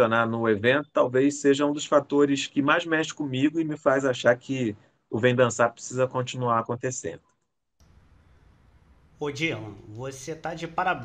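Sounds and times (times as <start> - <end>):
man speaking: 0.0 - 7.2, 9.2 - 11.0.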